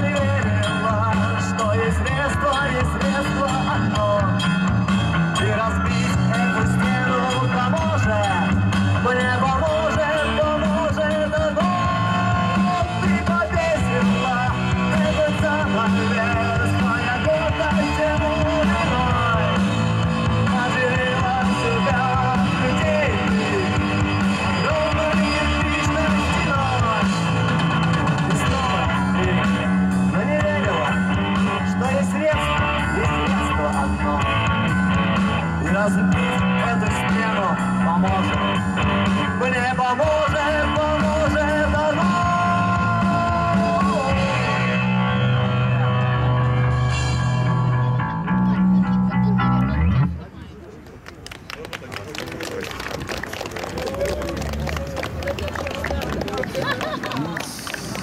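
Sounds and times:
live rock band: 0.0s - 50.1s
person singing: 5.3s - 34.6s, 39.2s - 45.0s.

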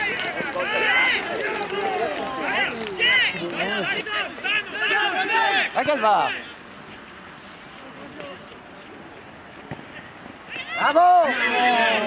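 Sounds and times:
crowd shouting and cheering: 0.0s - 6.6s, 9.9s - 12.0s
distant scattered voices: 0.0s - 12.0s.

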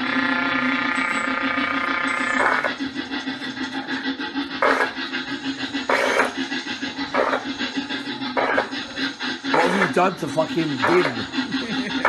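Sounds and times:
held steady tone: 0.0s - 12.0s
low pulsing drone: 0.0s - 12.0s.

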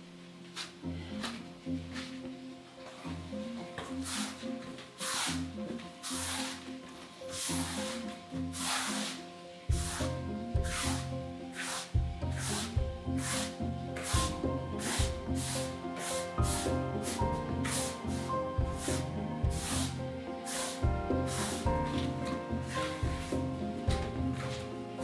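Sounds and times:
background music: 0.0s - 25.0s
paintbrush swishing on wall: 2.8s - 25.0s
bass line: 12.0s - 15.8s, 16.4s - 25.0s.

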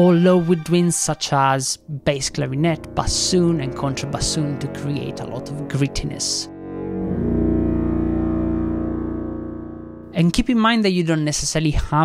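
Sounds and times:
low woodwinds sustained chord: 0.0s - 10.1s.

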